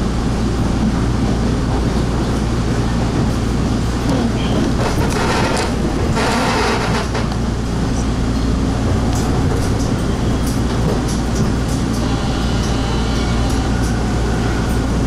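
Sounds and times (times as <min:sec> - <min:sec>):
subway wheels rumbling on rail: 0:00.0 - 0:15.0.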